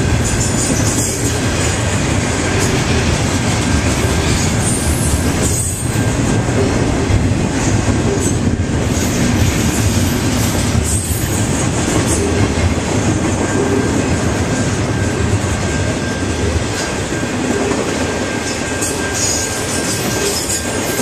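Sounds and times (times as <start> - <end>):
freight train wheels on rails: 0.0 - 21.0.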